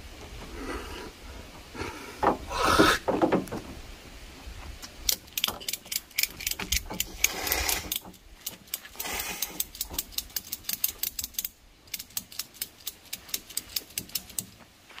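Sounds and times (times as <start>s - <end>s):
ratchet clicking: 5.1s - 14.5s
strap webbing rasp: 5.1s - 14.5s.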